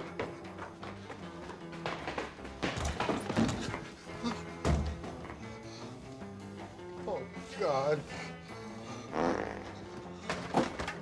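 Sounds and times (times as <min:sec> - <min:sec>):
background music: 0:00.0 - 0:11.0
comic flatulence sound effect: 0:09.1 - 0:09.8.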